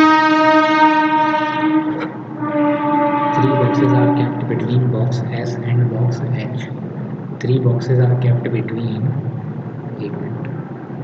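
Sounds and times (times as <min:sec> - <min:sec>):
loud horn long note: 0:00.0 - 0:05.7.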